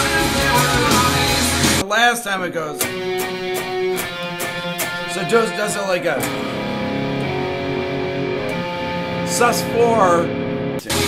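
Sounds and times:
electric guitar chord ringing: 0.0s - 1.8s, 2.4s - 11.0s.

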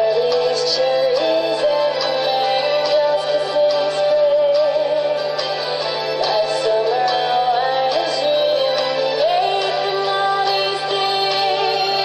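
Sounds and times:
person singing into microphone: 0.0s - 5.4s, 6.1s - 12.0s
backing music: 0.0s - 12.0s.

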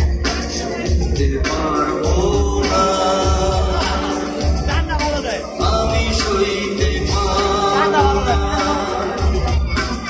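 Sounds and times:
live band with bass beat: 0.0s - 10.0s
man singing: 0.0s - 10.0s.

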